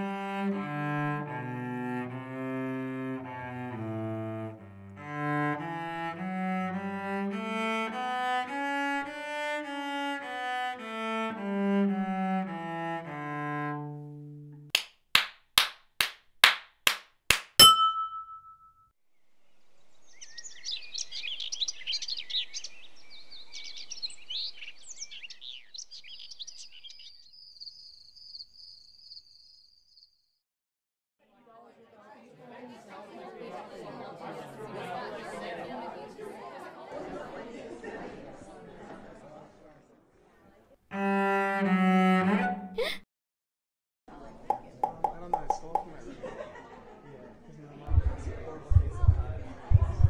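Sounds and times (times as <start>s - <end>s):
cello bowed melody: 0.0s - 14.7s, 40.9s - 42.9s
hand claps: 14.8s - 18.2s, 44.5s - 45.9s.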